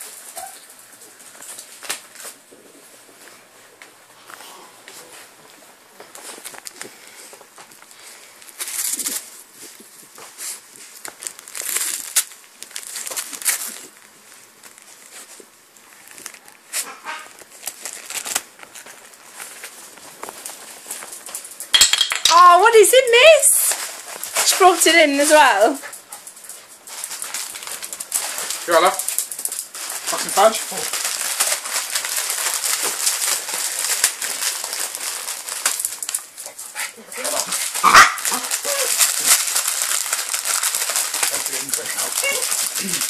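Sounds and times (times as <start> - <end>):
wrapping paper crinkling and tearing: 0.0 - 2.6, 4.9 - 21.7, 22.3 - 43.0.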